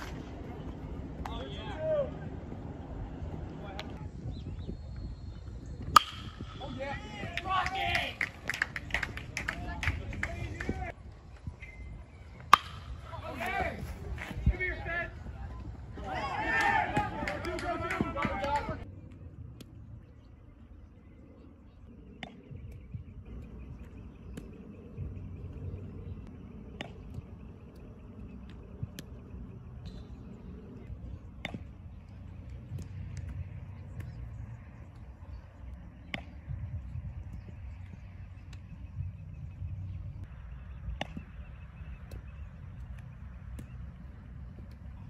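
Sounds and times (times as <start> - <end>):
low outdoor rumble: 0.0 - 45.0
bat cracking ball: 5.9 - 9.6, 12.4 - 13.8
spectators shouting: 16.0 - 18.8.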